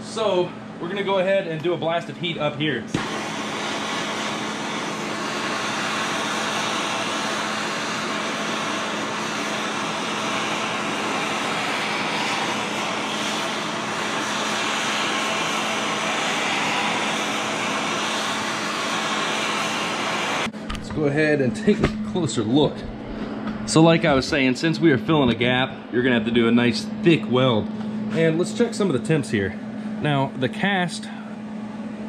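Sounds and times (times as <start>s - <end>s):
gas torch hissing: 2.6s - 20.6s.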